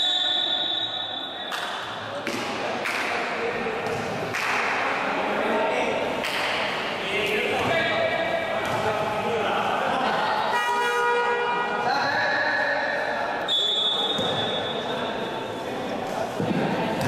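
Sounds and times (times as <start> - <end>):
echoing voices: 0.0 - 17.0.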